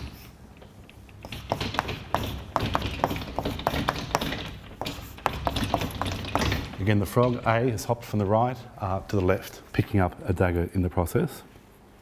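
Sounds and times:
chalk tapping on blackboard: 1.1s - 6.7s.

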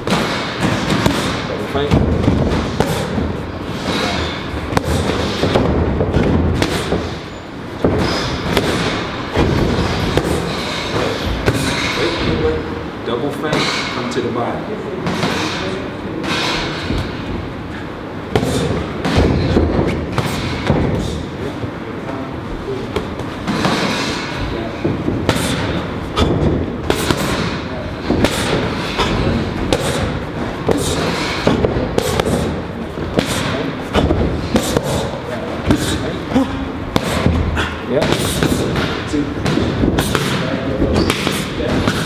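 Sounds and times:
boxing gloves hitting punch mitts: 0.0s - 12.4s, 18.3s - 21.3s, 22.9s - 42.0s.

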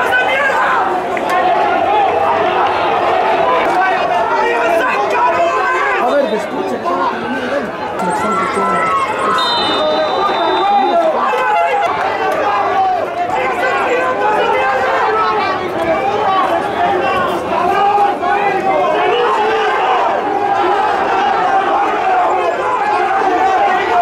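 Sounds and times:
crowd chattering: 0.0s - 24.0s
referee's whistle blast: 8.2s - 11.3s.

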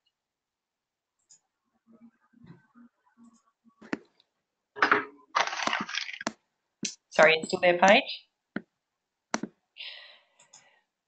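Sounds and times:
soft breath: 9.8s - 11.0s.

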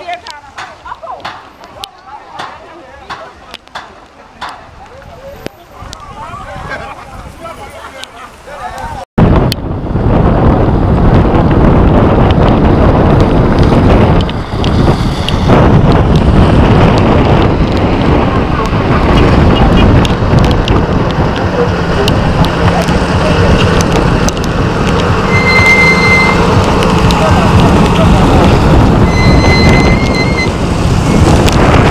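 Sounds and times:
wind buffeting microphone: 0.0s - 7.7s, 8.7s - 31.9s
short high-pitched tones: 25.3s - 26.4s.

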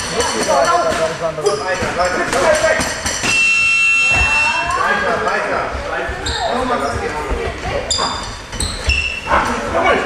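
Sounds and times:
voices in echoing hall: 0.0s - 10.0s
short high shoe squeaks: 6.2s - 6.9s, 7.9s - 9.5s.

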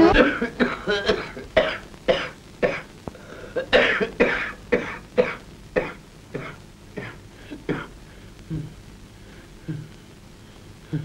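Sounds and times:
old man coughing harshly: 0.0s - 2.9s, 3.6s - 7.9s.

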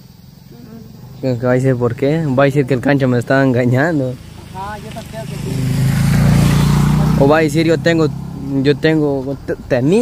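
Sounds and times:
vehicle engine approaching: 0.0s - 10.0s.

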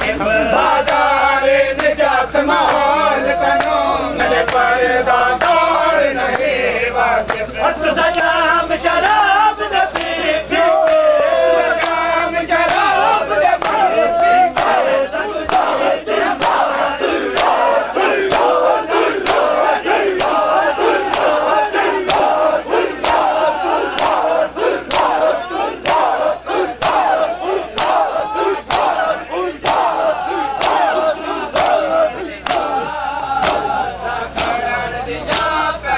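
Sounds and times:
men chanting and shouting: 0.0s - 35.9s
hands slapping chests in unison: 3.6s - 5.6s, 9.9s - 11.2s, 11.8s - 12.0s, 12.6s - 34.7s, 35.3s - 35.6s.

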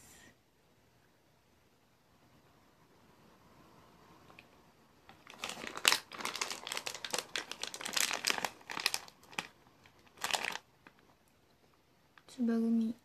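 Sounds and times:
plastic candy bag crinkling: 5.0s - 11.5s.

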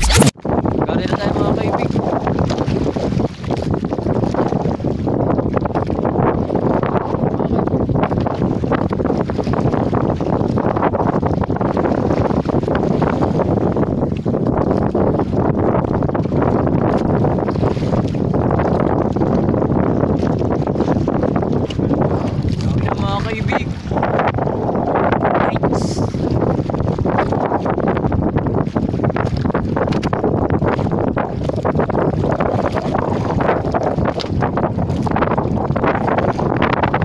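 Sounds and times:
short voice-like sound: 0.0s - 0.3s
wind rumbling on microphone: 0.0s - 37.0s.

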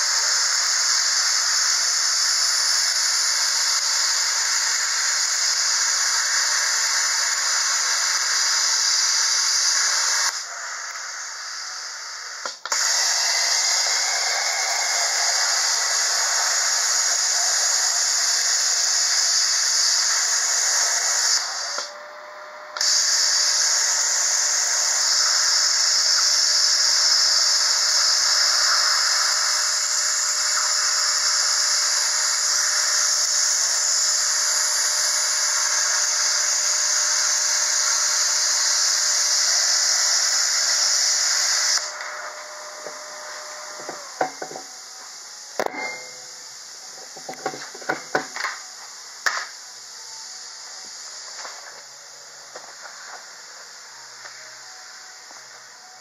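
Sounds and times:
cutting torch hissing: 0.0s - 56.0s.

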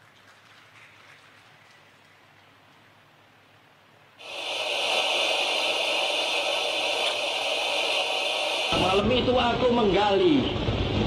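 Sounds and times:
steady hiss: 1.2s - 9.3s.

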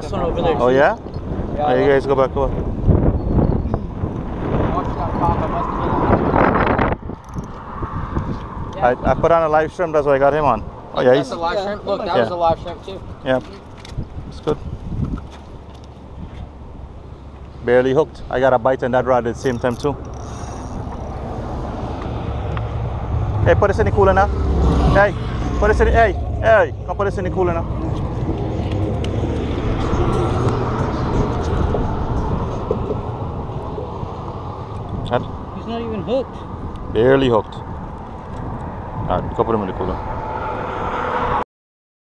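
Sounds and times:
wind rumbling on microphone: 0.0s - 11.0s, 12.4s - 17.3s, 19.3s - 41.4s.

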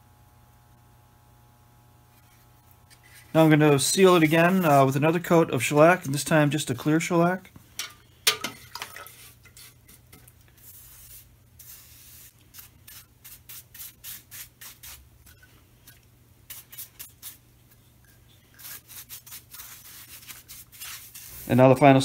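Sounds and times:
steady low hum: 0.0s - 13.1s
paintbrush strokes on wood: 2.2s - 5.1s, 18.1s - 21.7s.

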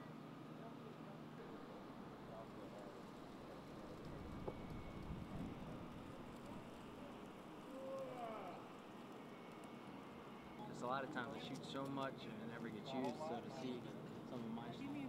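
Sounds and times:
faint outdoor hum: 0.0s - 15.0s.

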